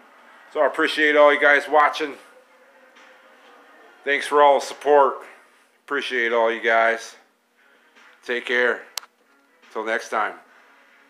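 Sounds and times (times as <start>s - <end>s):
faint steady hum: 0.0s - 11.0s
man's voice: 0.5s - 2.4s, 3.4s - 7.2s.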